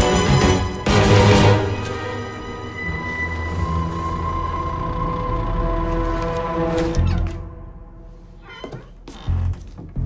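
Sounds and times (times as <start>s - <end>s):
orchestral music with low bass: 0.0s - 8.2s.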